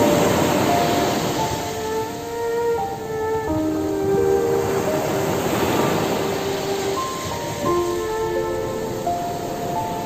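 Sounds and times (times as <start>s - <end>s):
ocean waves breaking on beach: 0.0s - 10.0s
slow calm music: 0.0s - 10.0s.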